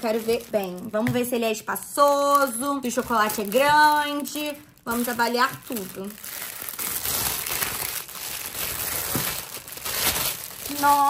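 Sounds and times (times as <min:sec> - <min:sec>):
cellophane crinkling: 0:00.0 - 0:11.0.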